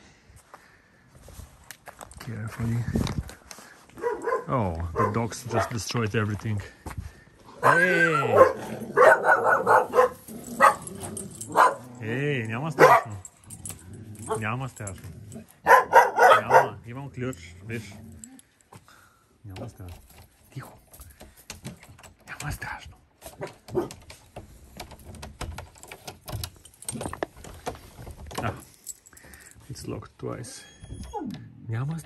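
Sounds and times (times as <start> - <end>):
dog barking: 4.0 - 5.8, 7.6 - 10.9, 11.5 - 12.0, 12.8 - 13.2, 15.6 - 16.8, 23.4 - 24.0
keys clicking and rattling: 8.4 - 18.7, 19.6 - 29.8.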